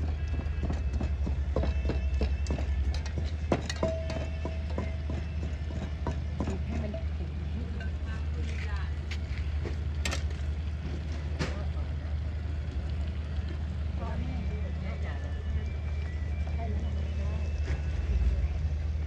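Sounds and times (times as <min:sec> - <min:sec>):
gas burner rumble: 0:00.0 - 0:19.0.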